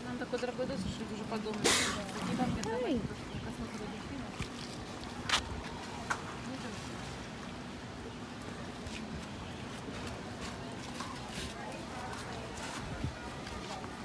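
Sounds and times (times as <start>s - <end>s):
faint voices: 0.0s - 14.0s.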